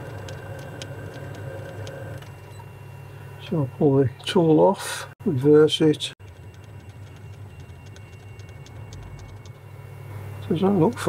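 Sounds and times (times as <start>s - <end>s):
light regular ticking: 0.0s - 2.4s, 6.2s - 11.0s.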